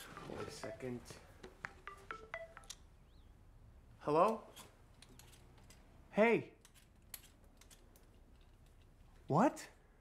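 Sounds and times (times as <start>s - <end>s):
mobile phone ringtone: 0.0s - 2.8s.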